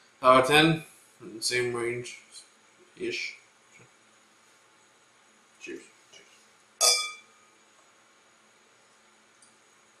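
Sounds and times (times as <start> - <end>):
beer glasses clinking: 6.8 - 7.3.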